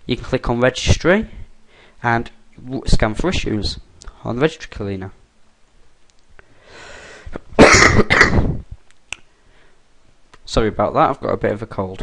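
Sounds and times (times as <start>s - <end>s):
man breathing in: 1.6s - 2.0s, 6.4s - 7.4s, 9.4s - 9.8s
man coughing harshly: 7.6s - 8.6s.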